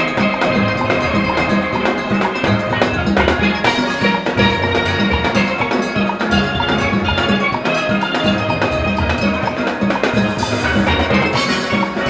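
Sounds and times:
drum kit beat: 0.0s - 12.0s
steelpans playing: 0.0s - 12.0s.

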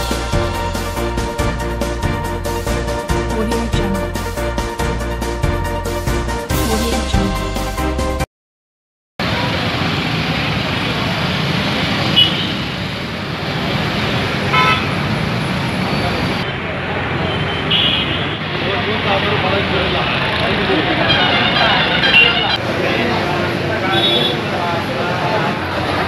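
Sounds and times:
steady traffic: 9.2s - 26.0s
crowd chatter: 18.5s - 26.0s.

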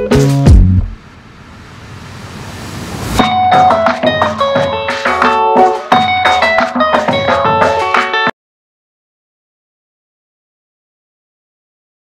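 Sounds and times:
rushing riser effect: 0.3s - 3.8s
background music: 3.2s - 8.3s.

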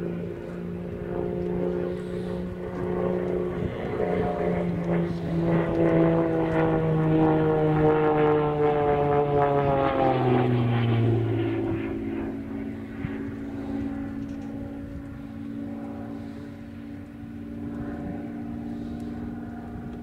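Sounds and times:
propeller aircraft engine droning: 0.0s - 20.0s.

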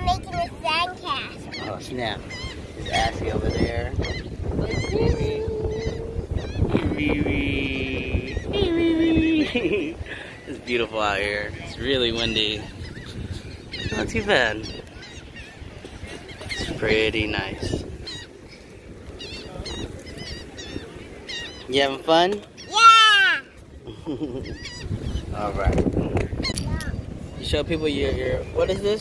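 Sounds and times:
gulls calling: 0.0s - 29.0s
wind buffeting microphone: 0.0s - 29.0s.

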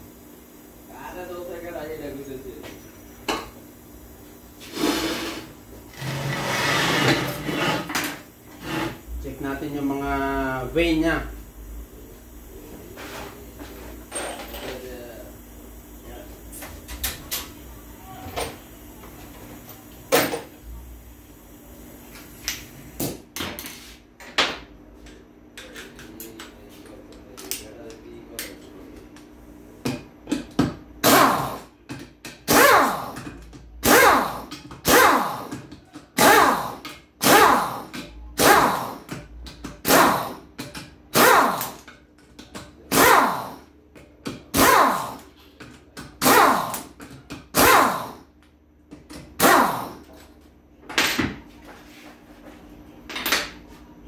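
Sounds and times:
faint steady hum: 7.1s - 54.0s
pneumatic impact wrench hammering: 30.3s - 41.9s, 42.9s - 43.7s, 44.4s - 45.3s, 46.2s - 48.3s, 49.1s - 50.2s.

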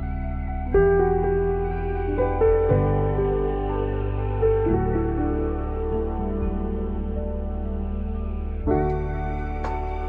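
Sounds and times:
slow soft background music: 0.0s - 10.0s.

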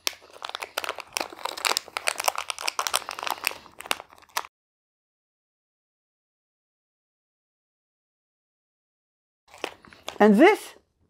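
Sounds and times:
plastic bag crinkling: 0.0s - 4.5s, 9.5s - 10.4s.

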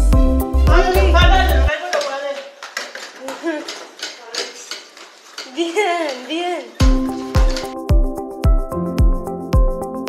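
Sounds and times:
plastic toy rolling on tiles: 1.7s - 7.8s.

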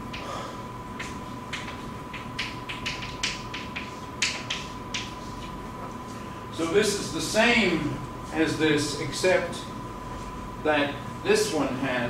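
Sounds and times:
chalk tapping on blackboard: 1.0s - 5.6s.

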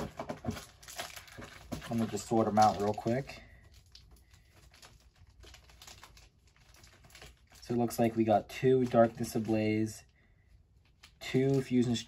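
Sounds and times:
foil packs crinkling: 0.0s - 12.0s.

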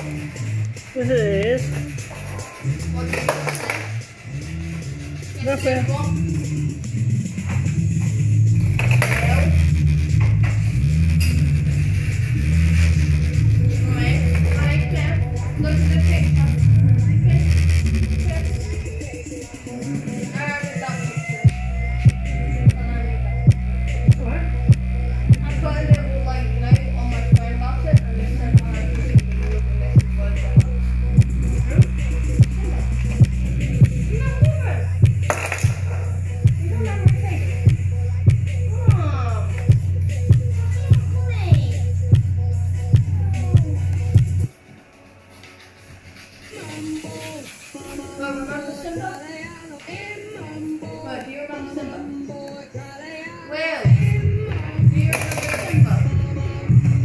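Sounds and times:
bass-heavy music over loudspeaker: 0.0s - 44.5s, 53.6s - 57.0s
kick drum beats: 21.4s - 29.4s, 30.0s - 44.5s.

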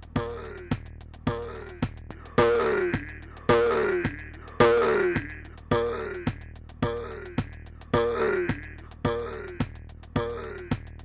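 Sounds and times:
drum machine ticking pattern: 0.0s - 11.0s.

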